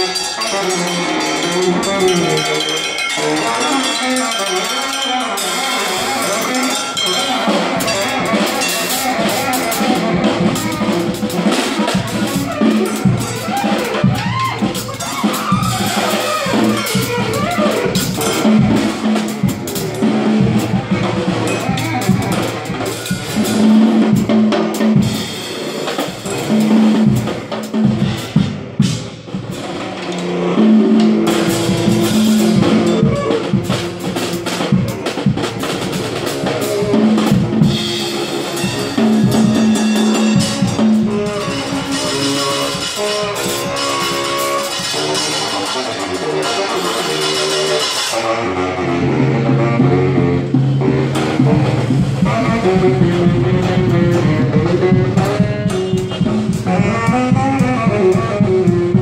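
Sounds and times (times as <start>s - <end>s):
saxophone playing: 0.0s - 28.0s, 30.0s - 59.0s
drum kit with snare hits: 5.4s - 59.0s.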